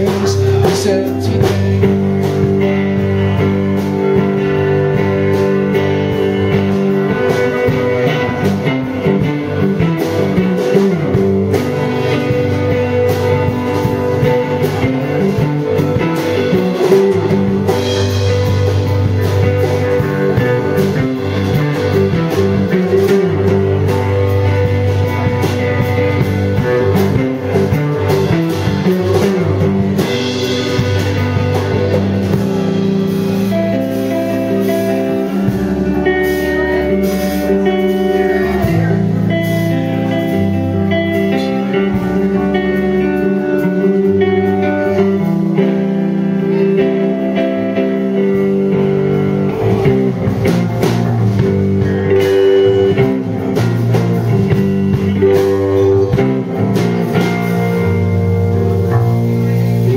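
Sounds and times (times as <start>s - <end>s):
bass guitar: 0.0s - 59.9s
drum kit beating: 0.0s - 59.9s
electric guitar: 0.0s - 59.9s.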